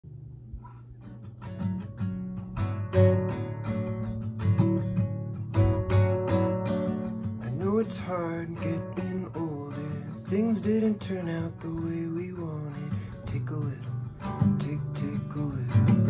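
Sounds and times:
fingerpicked classical guitar: 0.5s - 16.0s
man singing: 7.4s - 16.0s.

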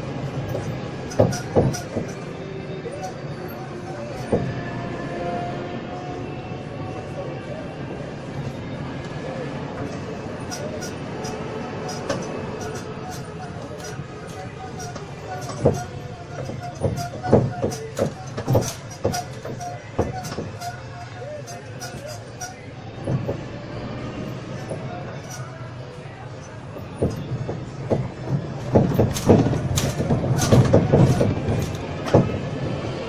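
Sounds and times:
carriages rattling: 0.0s - 33.0s
road train rolling: 0.0s - 33.0s.

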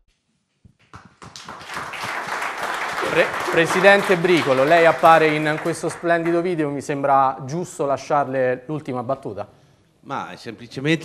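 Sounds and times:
audience clapping: 0.8s - 6.8s.

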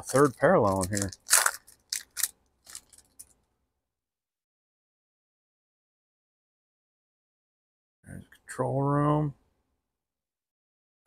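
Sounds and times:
foil wrapper crinkling: 0.0s - 3.3s.

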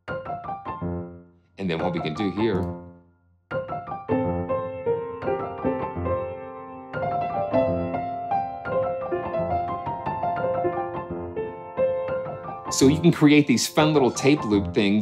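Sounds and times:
upright piano chords and melody: 0.0s - 15.0s.

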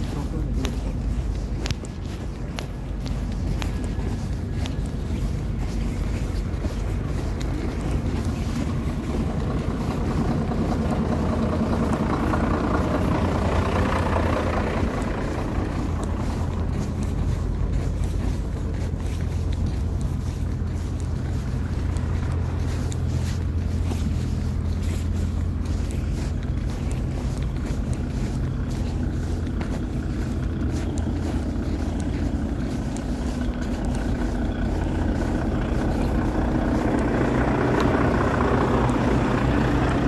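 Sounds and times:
idling lorry and car engines: 0.0s - 40.0s
loud engine noise: 0.0s - 40.0s.

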